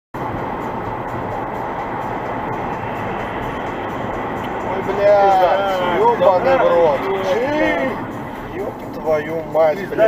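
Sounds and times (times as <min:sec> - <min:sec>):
road and tyre noise: 0:00.1 - 0:10.0
car engine rumble: 0:00.2 - 0:10.0.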